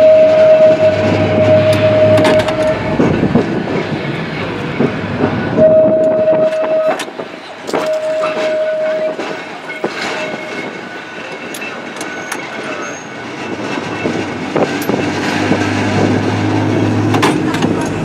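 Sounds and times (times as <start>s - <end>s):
tram wheels rumbling on rails: 0.0s - 18.0s.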